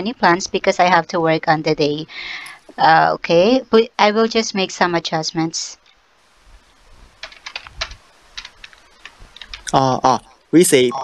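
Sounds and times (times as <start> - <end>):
typing on computer keyboard: 7.2 - 9.8.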